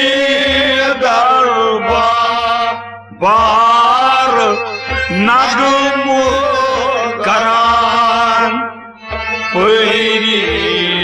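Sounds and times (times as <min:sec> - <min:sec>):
harmonium: 0:00.0 - 0:11.0
man singing long held notes: 0:00.0 - 0:11.0.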